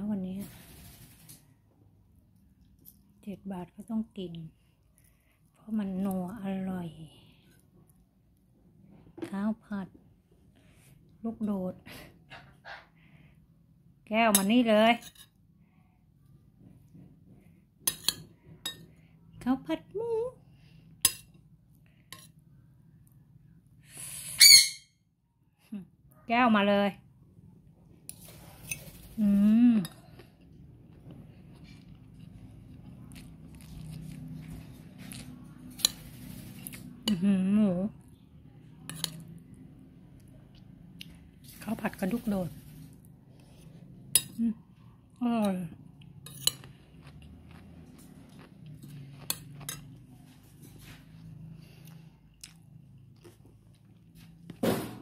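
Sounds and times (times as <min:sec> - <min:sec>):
faint low hum: 0:00.0 - 0:24.2, 0:25.0 - 0:55.0
high-pitched squeak: 0:24.4 - 0:24.9
person chewing food: 0:29.9 - 0:35.4, 0:46.0 - 0:54.6.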